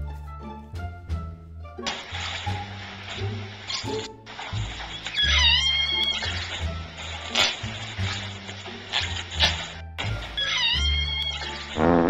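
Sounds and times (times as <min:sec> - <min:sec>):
background music: 0:00.0 - 0:12.0
pig squealing: 0:04.9 - 0:06.6, 0:10.3 - 0:11.8.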